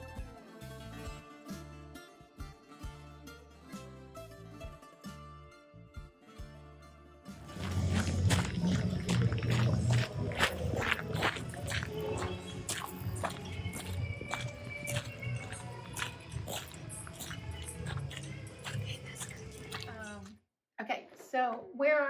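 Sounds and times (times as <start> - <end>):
footsteps crunching on gravel: 7.4 - 20.3
bass-heavy party music: 7.5 - 20.2.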